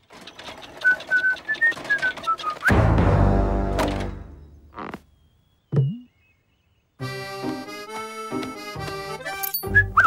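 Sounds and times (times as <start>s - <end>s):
hand trolley clicking and rattling: 0.0s - 2.7s.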